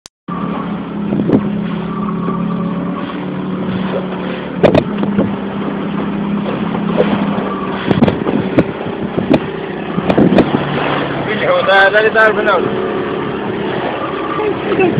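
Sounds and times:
engine humming: 0:00.3 - 0:14.9
knocks and clicks: 0:04.6 - 0:05.3.

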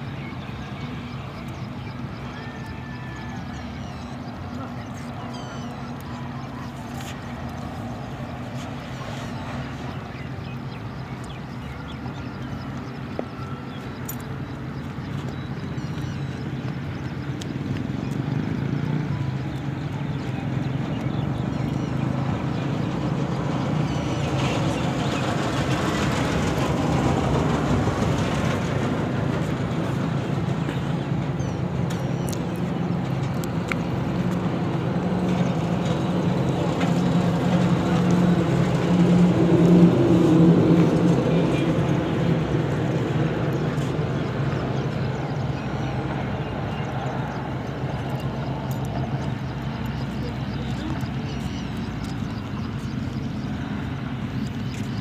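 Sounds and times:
vehicle engine running: 0:00.0 - 0:55.0.

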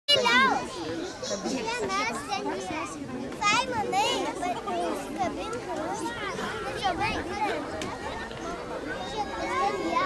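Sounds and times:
adults talking: 0:00.1 - 0:10.0
young children chattering: 0:00.1 - 0:10.0.

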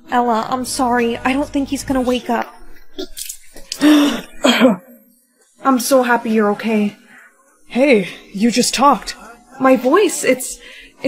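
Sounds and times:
person coughing: 0:03.7 - 0:04.9.

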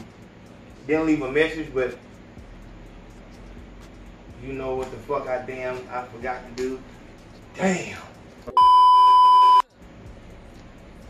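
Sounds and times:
high-pitched test-tone beep: 0:08.6 - 0:09.7.

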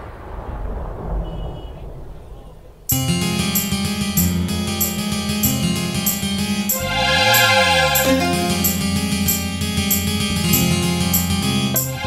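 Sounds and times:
thunder rumble over speakers: 0:00.0 - 0:02.9.

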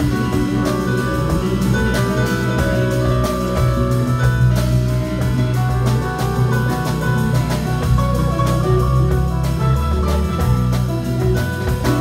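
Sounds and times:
drum kit with cymbal strikes: 0:00.0 - 0:12.0
electric bass: 0:00.0 - 0:12.0.

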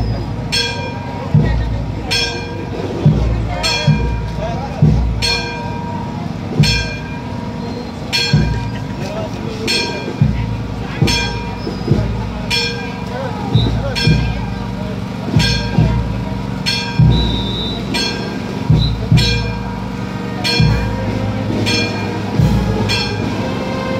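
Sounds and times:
murmur of crowd voices: 0:00.0 - 0:23.9
bell struck with low thud: 0:00.5 - 0:06.0, 0:06.6 - 0:07.5, 0:08.1 - 0:08.9, 0:09.7 - 0:13.0, 0:13.6 - 0:14.6, 0:15.3 - 0:21.0, 0:21.6 - 0:23.4.

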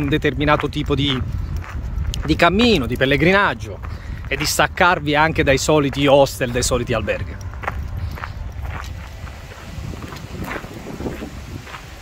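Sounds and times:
footsteps on gravel: 0:00.0 - 0:12.0
low rumble: 0:01.2 - 0:12.0.

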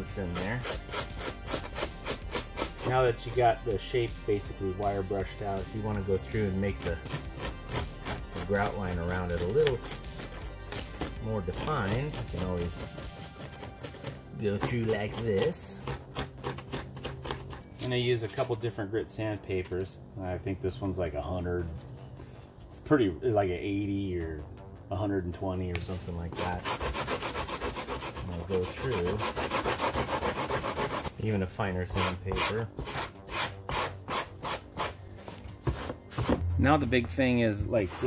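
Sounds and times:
metal tool scraping foam: 0:00.0 - 0:03.6, 0:05.4 - 0:18.5, 0:25.9 - 0:35.0, 0:37.2 - 0:38.0.

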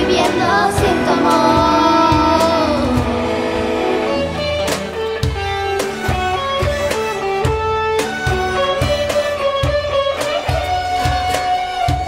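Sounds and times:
ensemble held note: 0:00.0 - 0:04.9
guitar notes: 0:00.0 - 0:12.0
steady drum beat: 0:00.0 - 0:12.0
violins: 0:00.0 - 0:12.0.

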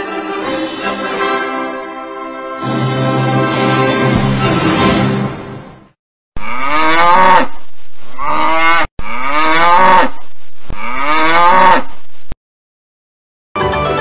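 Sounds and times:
music: 0:00.0 - 0:06.0, 0:13.6 - 0:14.0
cow mooing: 0:06.4 - 0:07.6, 0:08.2 - 0:10.2, 0:10.8 - 0:12.0.

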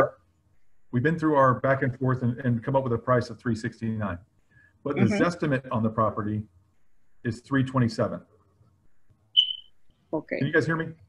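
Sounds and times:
person speaking: 0:01.0 - 0:04.2, 0:04.9 - 0:06.4, 0:07.3 - 0:08.2, 0:10.2 - 0:10.9
high electronic beep: 0:09.4 - 0:09.9.

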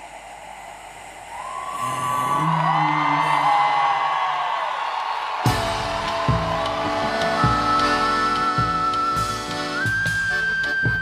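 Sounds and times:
audience whooping and cheering: 0:00.0 - 0:11.0
long wavering high note: 0:06.5 - 0:11.0.

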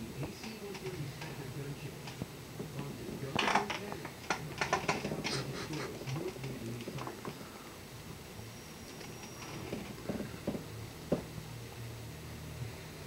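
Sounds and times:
office chair base clicking and rattling: 0:00.0 - 0:07.4, 0:08.9 - 0:11.3.

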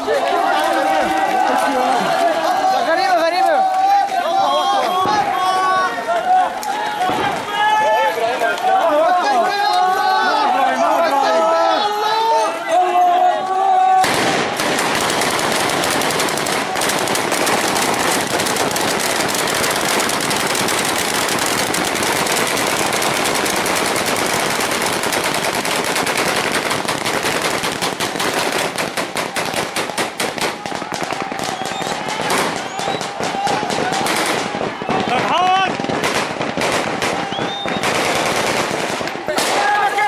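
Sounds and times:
automatic rifle gunfire: 0:14.0 - 0:39.7.

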